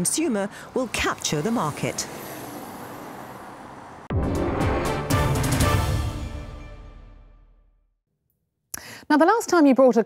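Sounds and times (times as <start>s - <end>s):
car and road noise: 0.0s - 6.4s.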